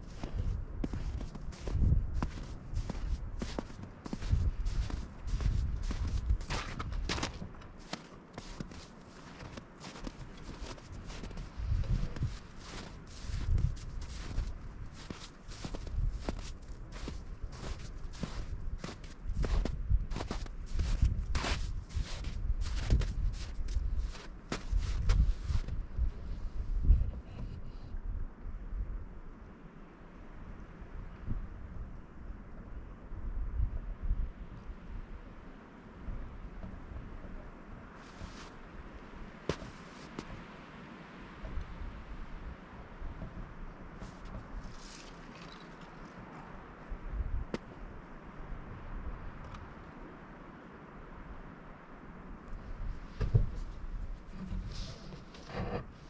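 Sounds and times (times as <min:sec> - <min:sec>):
footsteps crunching on snow: 0:00.0 - 0:25.8, 0:38.0 - 0:38.6, 0:39.5 - 0:40.4, 0:44.0 - 0:45.8
wind buffeting microphone: 0:00.0 - 0:29.2, 0:41.3 - 0:50.1, 0:52.3 - 0:56.0.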